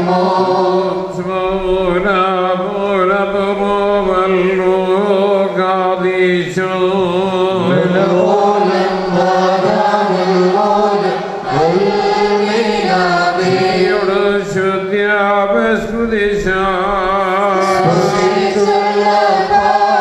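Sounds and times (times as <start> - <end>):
person chanting: 0.0 - 20.0
held drone note: 17.1 - 20.0.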